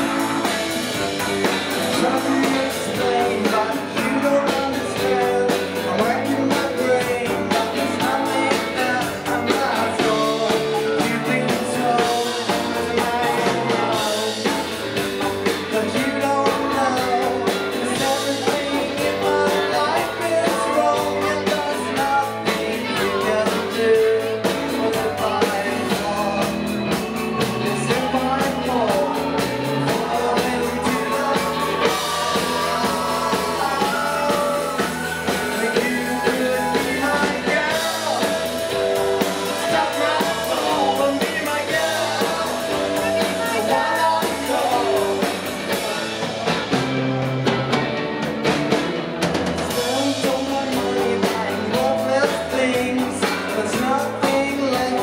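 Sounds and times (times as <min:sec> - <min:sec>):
man singing: 0:00.0 - 0:46.9, 0:49.5 - 0:55.0
bass: 0:00.0 - 0:55.0
drum kit: 0:00.0 - 0:55.0
electric guitars: 0:00.0 - 0:55.0
keyboard: 0:00.0 - 0:55.0.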